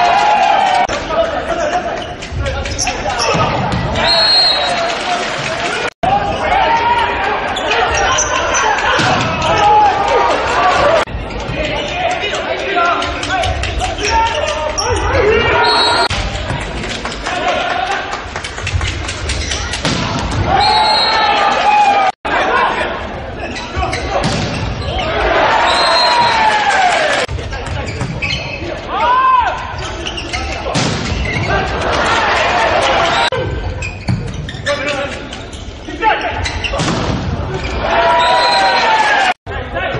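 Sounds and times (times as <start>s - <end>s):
crowd noise: 0.0s - 39.9s
voices echoing in a hall: 0.0s - 39.9s
shoe squeals: 1.9s - 5.1s, 7.5s - 9.5s, 13.3s - 16.1s, 19.3s - 19.8s, 20.5s - 21.5s, 23.4s - 26.5s, 27.7s - 31.8s, 33.0s - 36.9s, 37.5s - 39.2s.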